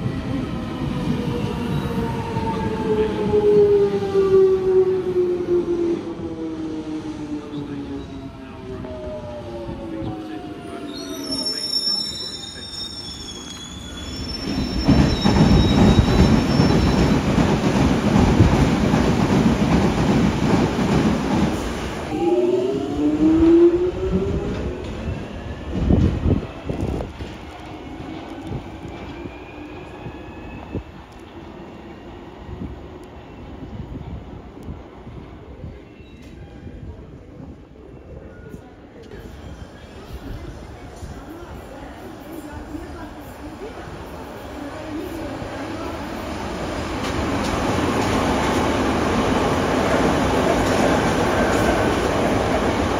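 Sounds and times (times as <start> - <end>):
train wheel squeal: 10.9 - 17.4, 28.9 - 30.9, 35.7 - 36.8
train wheels rumbling on rail: 13.3 - 22.2, 39.0 - 52.9.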